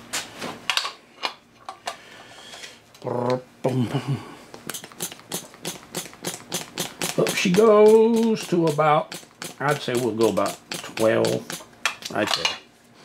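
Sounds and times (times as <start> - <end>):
hand pump clicking: 4.7 - 12.4.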